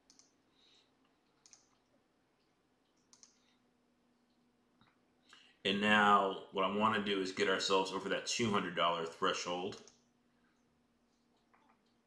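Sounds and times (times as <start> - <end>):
soft computer mouse clicks: 0.0 - 0.4, 1.2 - 1.9, 2.8 - 3.4.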